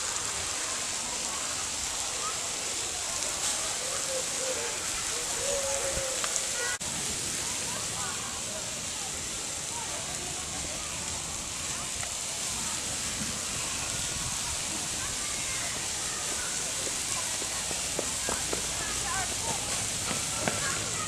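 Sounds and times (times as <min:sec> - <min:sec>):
faint indistinct voices: 0:00.0 - 0:21.0
steady outdoor hiss: 0:00.0 - 0:21.0.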